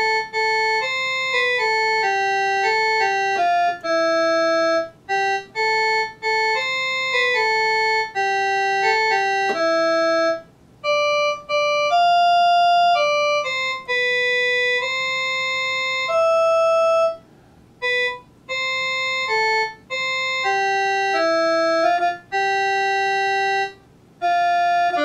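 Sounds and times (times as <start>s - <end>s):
electronic keyboard organ melody: 0.0s - 25.0s.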